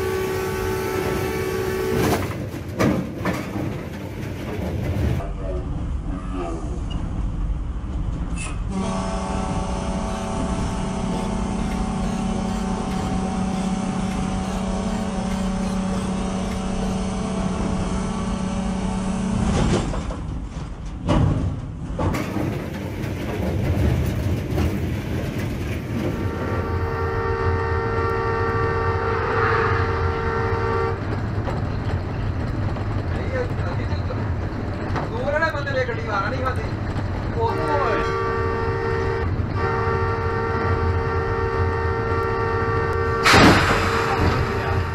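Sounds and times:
locomotive horn blast: 0.0s - 2.4s, 8.7s - 19.7s, 26.1s - 31.1s, 37.5s - 44.9s
engine and wheels rumbling: 0.0s - 44.9s.

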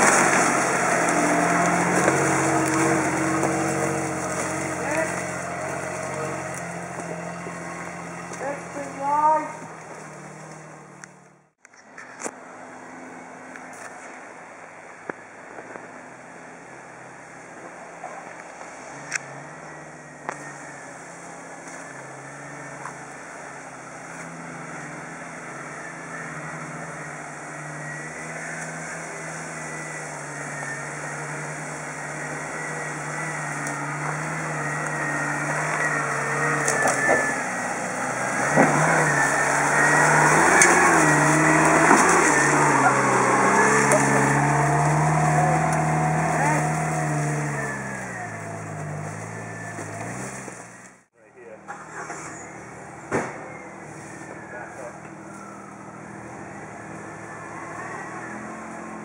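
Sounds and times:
engine pulling under load: 0.0s - 59.0s.

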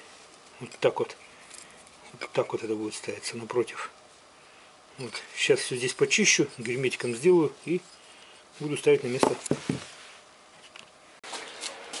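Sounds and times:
faint steady hum: 0.0s - 11.2s
faint handling sounds: 4.9s - 12.0s.

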